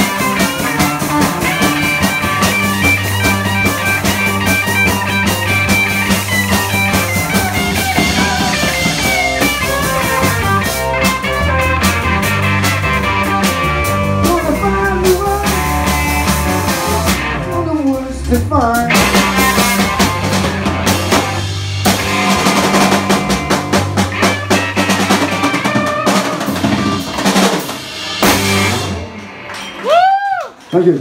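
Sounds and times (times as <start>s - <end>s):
drum kit: 0.0s - 30.7s
electric guitars: 0.0s - 30.7s
bass guitar: 0.0s - 31.0s.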